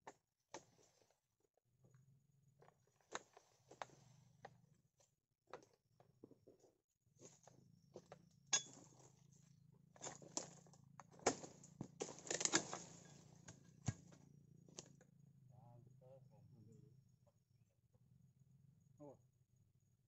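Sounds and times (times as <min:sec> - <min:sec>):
chisel knocking and cracking fronds: 0:10.0 - 0:14.2.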